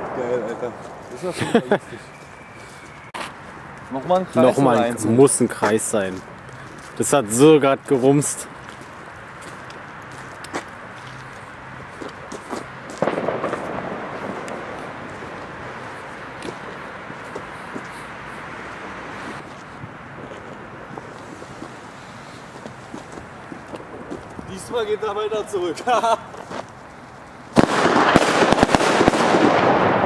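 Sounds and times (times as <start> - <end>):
loud firecracker bang: 0.0 - 2.2, 13.0 - 16.7, 27.6 - 30.0
firecrackers cracking: 0.0 - 30.0.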